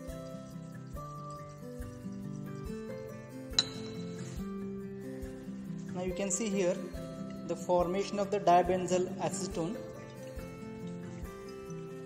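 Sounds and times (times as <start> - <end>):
soft background music: 0.0 - 12.0
glass flask clink: 1.0 - 4.7.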